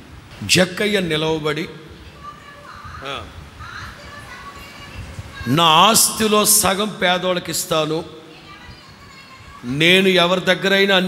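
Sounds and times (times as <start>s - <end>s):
room noise: 0.0s - 11.0s
man preaching: 0.4s - 1.9s, 5.4s - 8.2s, 9.6s - 11.0s.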